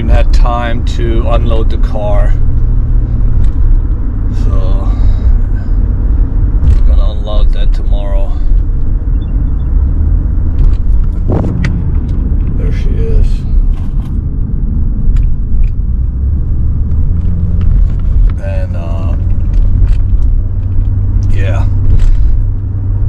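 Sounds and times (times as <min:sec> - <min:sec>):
car rumble: 0:00.0 - 0:23.0.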